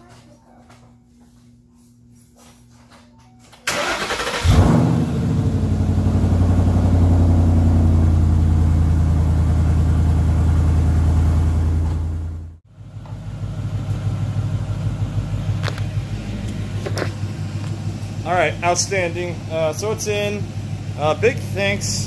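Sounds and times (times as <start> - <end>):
car engine revving and idling: 4.0 - 22.0.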